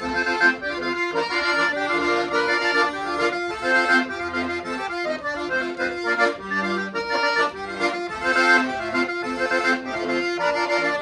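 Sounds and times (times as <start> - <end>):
solo accordion melody: 0.0 - 11.0.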